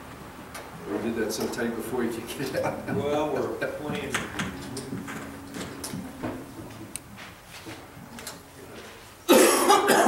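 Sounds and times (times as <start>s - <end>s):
low steady tone: 2.7s - 9.3s
microphone handling clicks and knocks: 3.9s - 8.4s.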